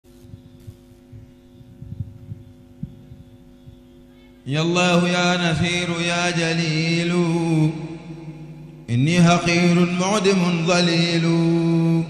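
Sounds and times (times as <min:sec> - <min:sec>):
electrical hum from sound system: 0:00.0 - 0:12.0
microphone handling bumps: 0:00.1 - 0:04.1.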